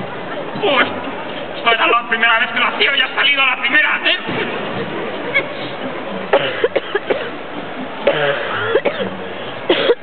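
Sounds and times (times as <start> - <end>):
faint voices: 0.0 - 10.0
person coughing: 6.3 - 7.3, 8.0 - 10.0.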